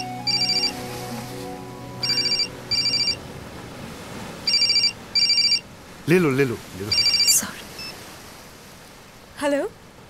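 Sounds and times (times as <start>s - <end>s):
mobile phone ringing: 0.0s - 0.8s, 2.0s - 3.2s, 4.4s - 5.6s, 6.9s - 7.4s
soft background music: 0.0s - 3.7s.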